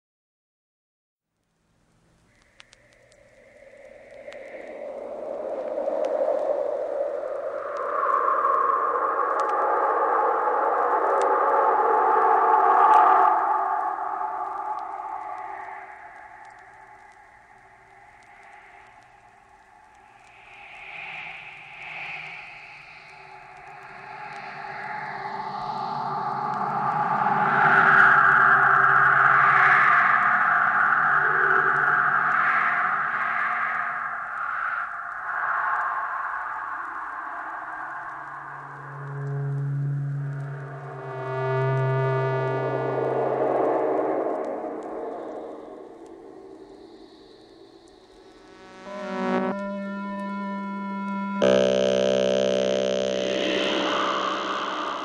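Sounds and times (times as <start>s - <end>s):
filtered white noise: 1.4s - 55.0s
sustained oscillator tones: 38.1s - 44.8s, 48.1s - 55.0s.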